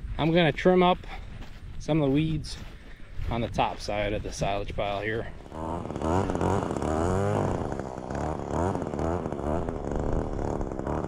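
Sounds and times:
string trimmer engine revving: 5.3s - 11.0s.

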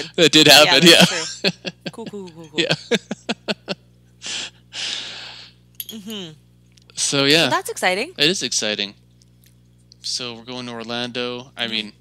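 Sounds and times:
person breathing: 4.2s - 5.6s.

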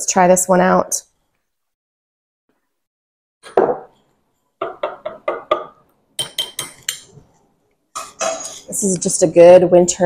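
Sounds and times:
spoon stirring in a mug: 4.3s - 9.0s
spoon clinking against mug: 6.2s - 7.1s, 8.0s - 8.7s.

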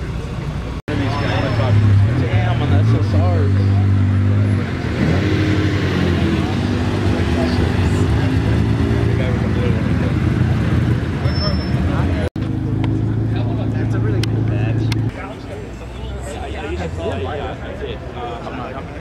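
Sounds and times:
car engines running at low speed: 0.0s - 15.4s
people talking: 0.0s - 19.0s.

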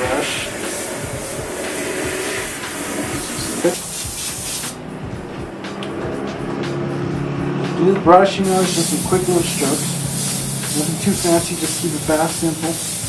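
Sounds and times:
airbrush spraying hiss: 0.0s - 5.0s, 8.4s - 13.0s.

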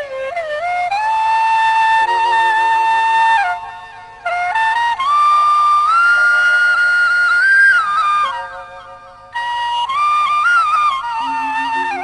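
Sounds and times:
faint steady backing music: 0.0s - 12.0s
flute playing slow melody: 0.0s - 12.0s.

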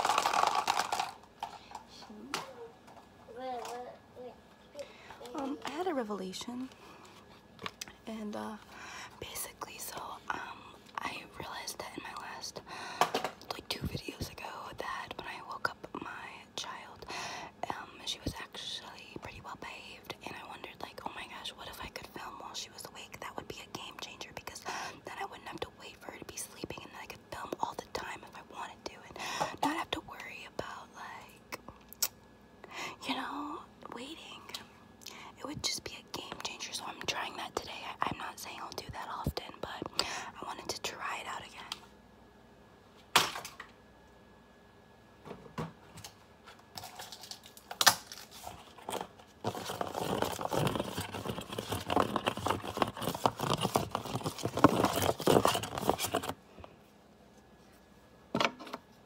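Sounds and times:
woman whispering: 7.9s - 12.7s, 13.4s - 31.7s, 32.8s - 41.8s.

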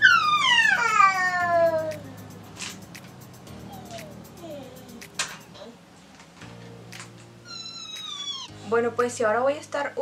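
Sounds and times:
faint background music: 0.0s - 10.0s
cat meowing: 7.4s - 8.5s.

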